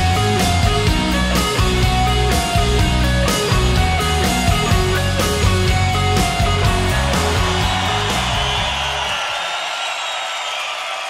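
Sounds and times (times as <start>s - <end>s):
rock music: 0.0s - 9.3s.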